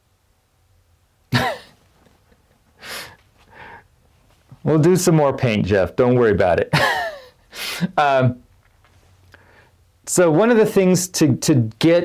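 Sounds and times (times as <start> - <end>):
breathy exhale: 2.8 - 3.9.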